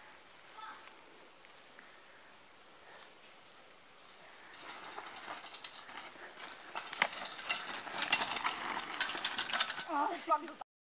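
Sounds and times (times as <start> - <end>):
bicycle rattling on dirt trail: 2.9 - 10.6.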